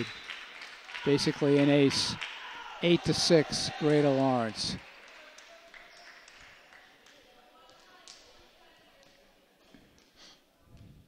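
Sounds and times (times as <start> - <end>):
distant voices in a gymnasium: 0.0 - 11.0.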